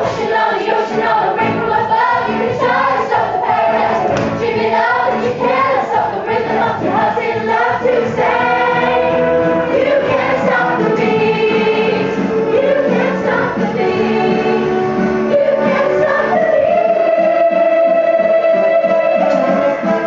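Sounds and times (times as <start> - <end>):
choir singing: 0.0 - 20.0
loud backing track: 0.0 - 20.0.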